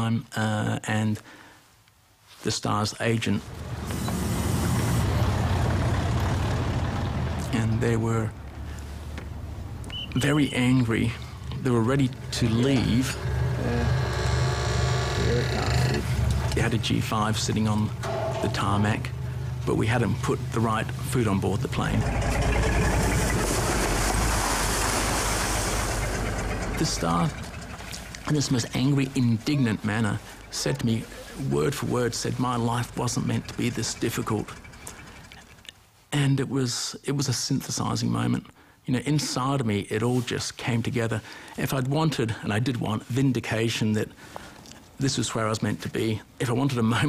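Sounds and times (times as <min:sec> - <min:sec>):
garbage truck engine rumbling: 0:03.3 - 0:35.7
loud hiss: 0:03.4 - 0:05.7.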